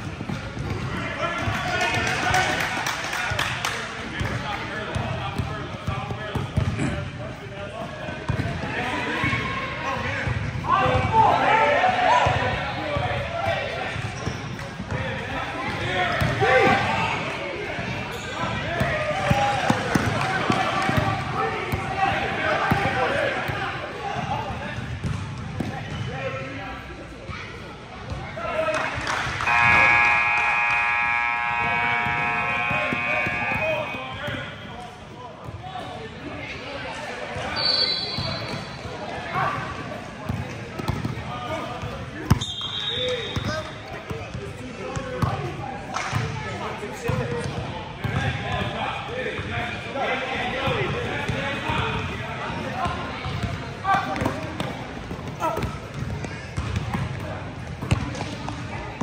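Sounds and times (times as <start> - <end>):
crowd chatter: 0.0 - 59.0
shoe squeaks: 18.1 - 18.5, 37.5 - 38.8
scoreboard buzzer: 29.4 - 34.0
referee's whistle blasts: 29.4 - 34.8, 37.5 - 38.7, 42.4 - 43.8.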